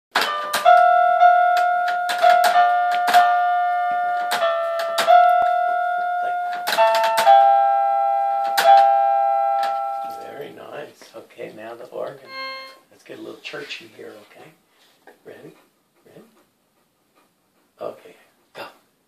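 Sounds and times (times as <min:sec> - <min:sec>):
toy keyboard note clusters: 0:00.2 - 0:10.2, 0:12.2 - 0:12.8.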